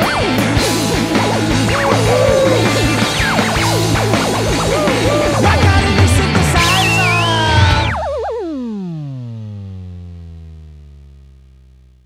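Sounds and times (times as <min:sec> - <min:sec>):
rock band final chord ringing: 0:00.0 - 0:08.2
pitched tone sliding down: 0:00.9 - 0:11.2.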